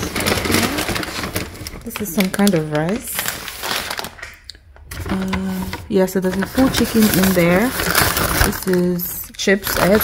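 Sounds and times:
paper bag rustling: 0.0 - 4.3, 4.9 - 10.0.

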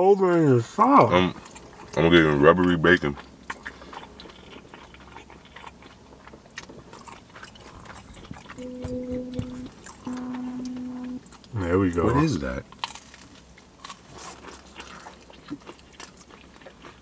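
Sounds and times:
steady low hum: 0.6 - 17.0
chewing and mouth clicks: 1.3 - 17.0.

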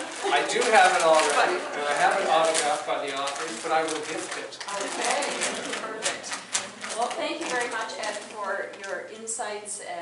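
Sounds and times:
audience applause: 0.0 - 7.1
person speaking: 0.0 - 9.3.

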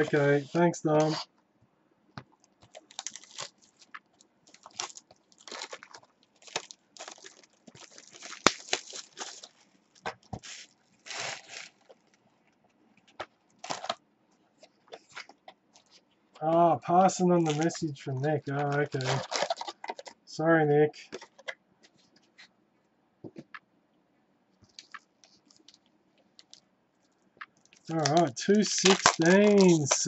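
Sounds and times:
plastic shrink-wrap tearing: 2.6 - 12.2, 13.1 - 14.0, 17.3 - 17.8, 18.6 - 20.2, 27.7 - 30.0.

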